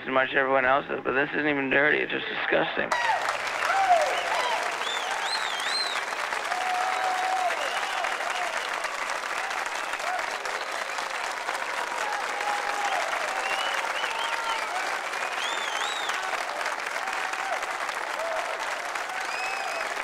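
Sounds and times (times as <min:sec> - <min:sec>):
audience cheering: 0:02.9 - 0:20.0
audience clapping: 0:02.9 - 0:20.0
whoops and whistles: 0:03.7 - 0:08.9, 0:12.6 - 0:16.4, 0:19.2 - 0:20.0.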